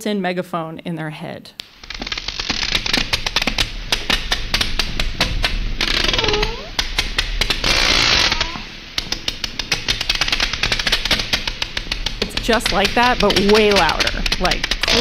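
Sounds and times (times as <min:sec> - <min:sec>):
hissy noise: 0:01.6 - 0:15.0
whale echolocation clicks: 0:01.6 - 0:15.0.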